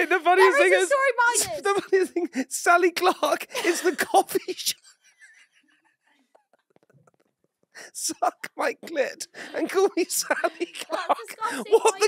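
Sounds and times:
person speaking: 0.0 - 4.8, 7.8 - 12.0.

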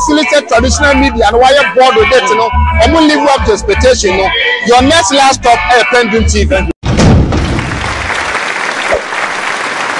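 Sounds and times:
deep boom: 6.8 - 8.0
recorded applause: 7.4 - 9.9.

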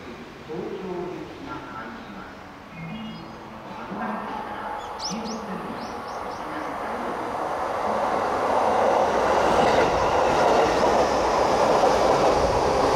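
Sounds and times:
electric train wheels on rails: 5.2 - 12.9.

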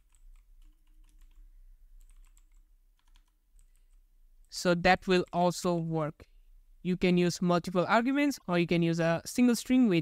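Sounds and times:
keyboard typing: 0.0 - 5.9.

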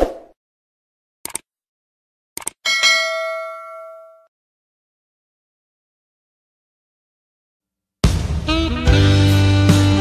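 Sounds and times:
bell ding: 2.7 - 4.3.

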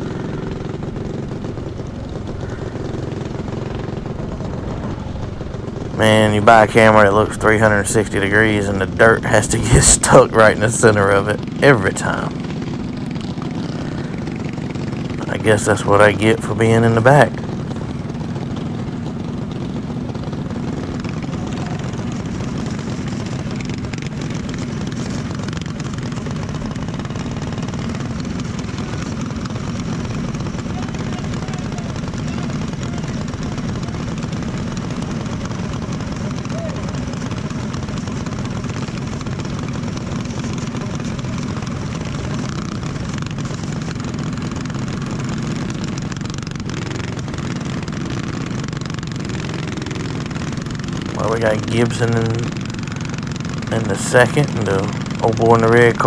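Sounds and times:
go-kart engine running: 0.0 - 56.0.

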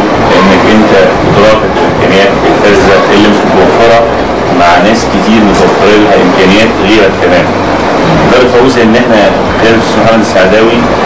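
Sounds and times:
steady background noise: 0.0 - 11.0
man speaking: 0.3 - 7.6, 8.2 - 11.0.

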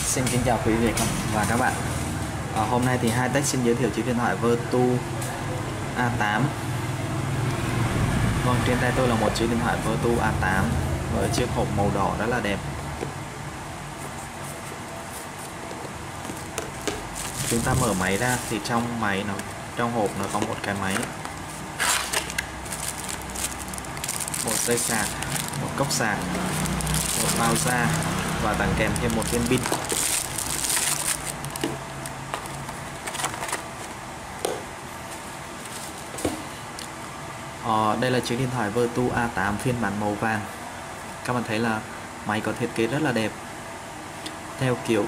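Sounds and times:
cardboard box and plastic wrap rustling: 14.1 - 19.4, 20.1 - 34.0.

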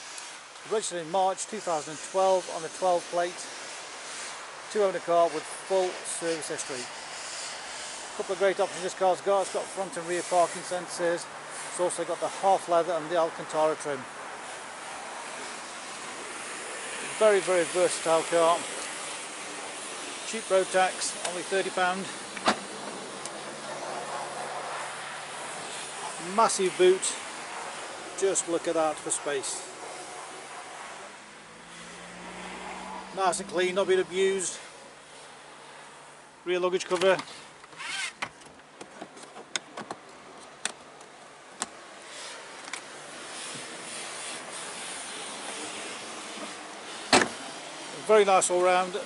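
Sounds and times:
steady hiss: 0.0 - 37.8, 39.1 - 49.0
tailgate lifting open: 22.4 - 23.0, 47.1 - 47.4
car tailgate latch click: 47.1 - 47.3.

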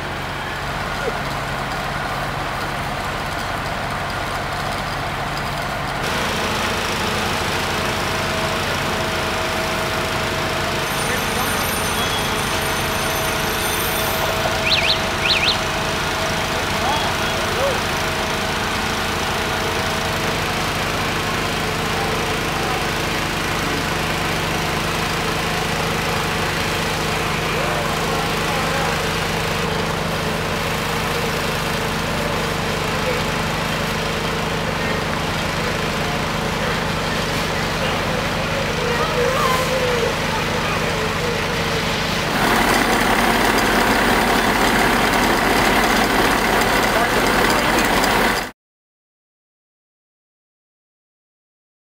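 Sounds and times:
fire engine pump droning: 0.0 - 48.5
thin high tone: 10.7 - 17.7
faint indistinct voices: 36.5 - 42.0.

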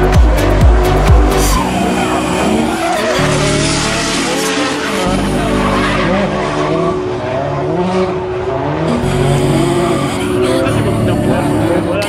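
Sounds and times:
car engine drifting: 0.0 - 12.0
music with deep bass beat: 0.0 - 12.0.

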